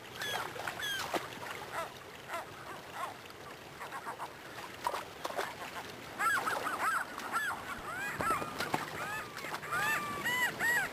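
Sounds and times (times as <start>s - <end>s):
shallow river rushing: 0.0s - 10.9s
gulls calling: 0.2s - 3.2s, 5.4s - 10.9s.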